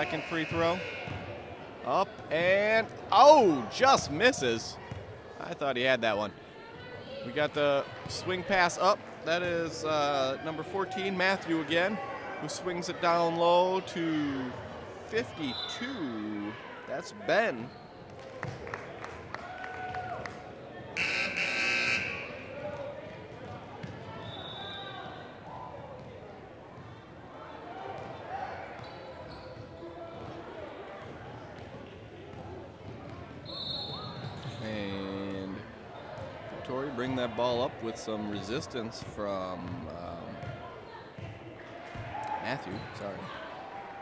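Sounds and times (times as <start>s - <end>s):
brief buzz-like tone: 21.0s - 22.5s.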